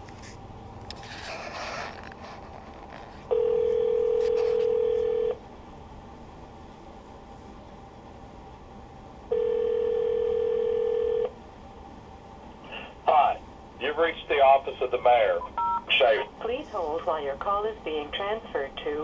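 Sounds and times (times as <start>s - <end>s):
telephone ringback tone: 3.3s - 5.4s, 9.3s - 11.3s, 15.6s - 15.8s.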